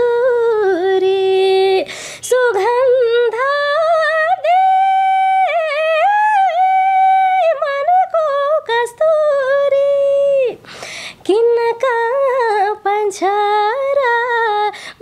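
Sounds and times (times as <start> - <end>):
woman singing unaccompanied: 0.0 - 15.0
singer breathing: 1.8 - 2.2, 10.6 - 11.2, 14.7 - 15.0.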